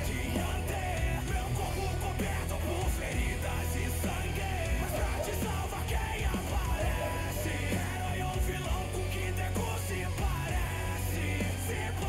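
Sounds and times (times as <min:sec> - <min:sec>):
backing music: 0:00.0 - 0:12.0
person singing: 0:00.0 - 0:12.0.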